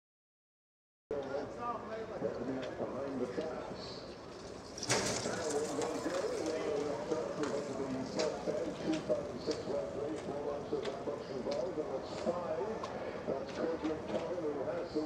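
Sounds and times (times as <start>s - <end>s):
starting traps clattering open: 4.8s - 6.1s
man commentating: 5.1s - 15.0s.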